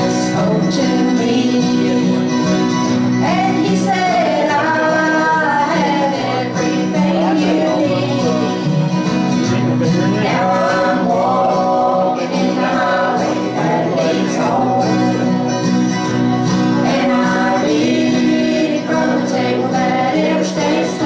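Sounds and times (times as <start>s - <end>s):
voices singing together: 0.0s - 8.9s, 9.8s - 21.0s
acoustic guitars: 0.0s - 21.0s
banjo: 0.0s - 21.0s.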